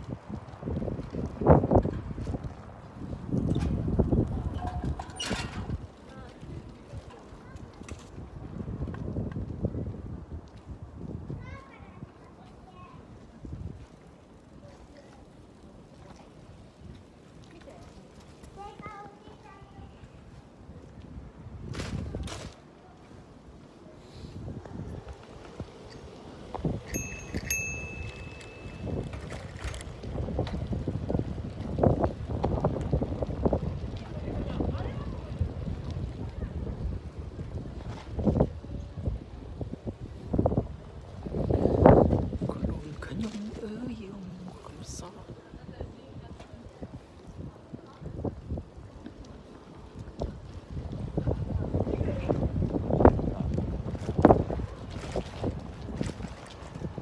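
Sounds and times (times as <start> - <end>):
wind buffeting microphone: 0.0 - 57.0
high steady ringing tone: 26.9 - 29.0.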